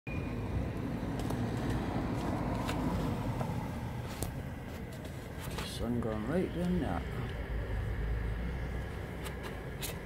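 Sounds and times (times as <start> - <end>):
road traffic rumble: 0.1 - 10.0.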